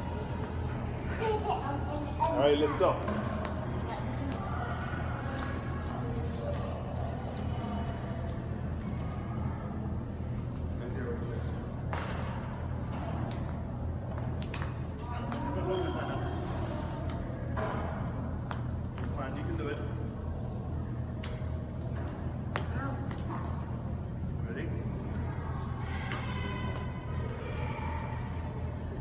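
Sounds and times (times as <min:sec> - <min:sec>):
faint voices: 0:00.0 - 0:14.1, 0:14.8 - 0:29.0
low hum of gym hall: 0:00.0 - 0:29.0.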